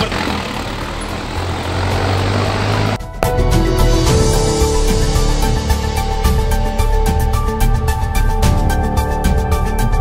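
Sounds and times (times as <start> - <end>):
engine running: 0.0 - 7.4
background music: 1.8 - 10.0.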